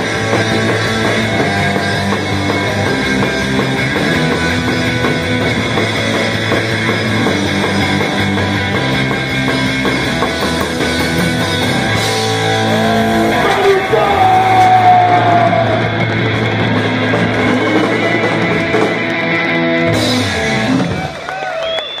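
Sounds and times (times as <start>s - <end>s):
distorted electric guitar chords: 0.0s - 21.2s
drums: 0.0s - 22.0s
live rock band: 0.0s - 22.0s
person singing: 12.7s - 15.8s.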